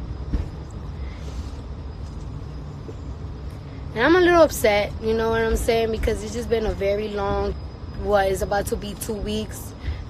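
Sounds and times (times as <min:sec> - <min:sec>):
low steady background rumble: 0:00.0 - 0:10.0.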